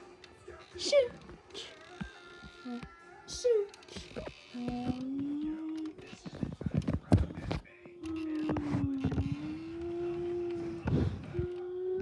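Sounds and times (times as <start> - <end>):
person humming engine noise: 7.9 - 12.0.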